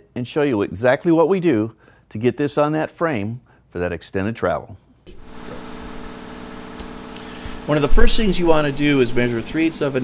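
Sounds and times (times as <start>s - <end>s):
machinery hum: 5.1s - 10.0s.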